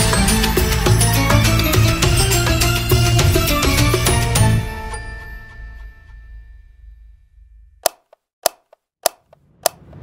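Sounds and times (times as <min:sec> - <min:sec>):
music: 0:00.0 - 0:06.8
sharp clicks: 0:07.8 - 0:10.0.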